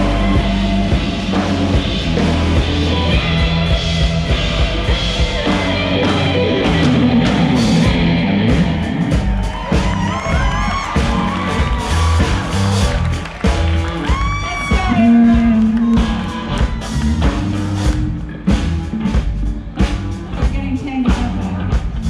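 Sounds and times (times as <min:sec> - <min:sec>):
bending guitar notes: 0:00.0 - 0:20.4
rock band playing: 0:00.0 - 0:22.0.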